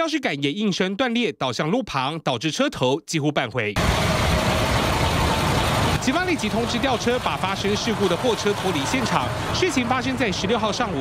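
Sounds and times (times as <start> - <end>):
truck engine idling: 3.8 - 11.0.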